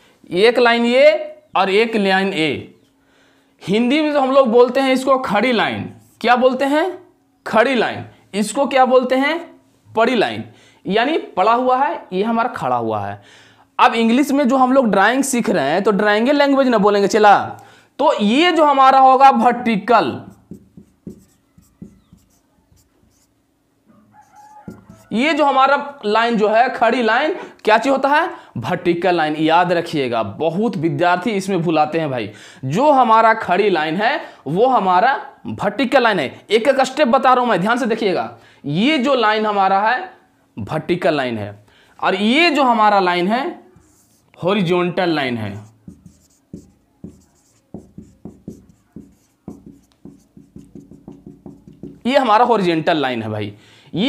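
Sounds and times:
marker writing on whiteboard: 0:20.1 - 0:23.4, 0:24.1 - 0:25.2, 0:43.7 - 0:44.6, 0:45.4 - 0:52.3
faint pitched call: 0:21.2 - 0:23.3, 0:23.9 - 0:25.3.

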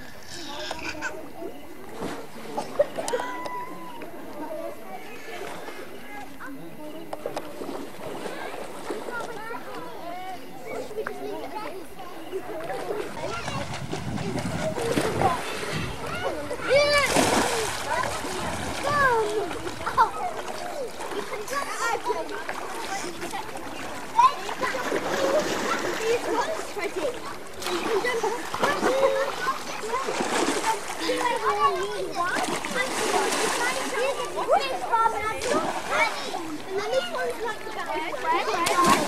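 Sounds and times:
children calling and chattering: 0:00.0 - 0:39.0
water splashing in pool: 0:01.0 - 0:10.3, 0:10.9 - 0:39.0.

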